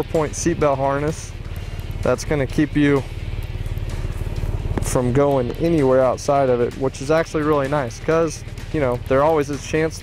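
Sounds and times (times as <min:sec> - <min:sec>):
go-kart engine idling: 0:00.0 - 0:10.0.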